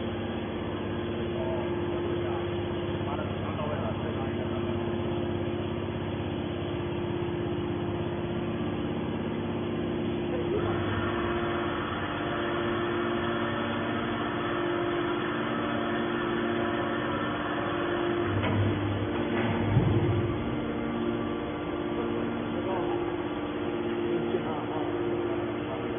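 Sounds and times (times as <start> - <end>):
hydraulic power unit humming: 0.0 - 25.9.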